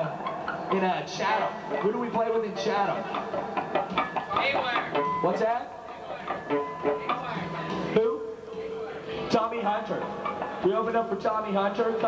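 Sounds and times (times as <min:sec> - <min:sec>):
voices in a noisy room: 0:00.0 - 0:12.0.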